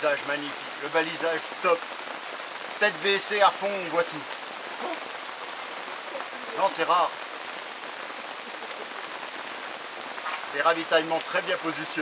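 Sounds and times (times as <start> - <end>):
steady rain: 0.0 - 12.0.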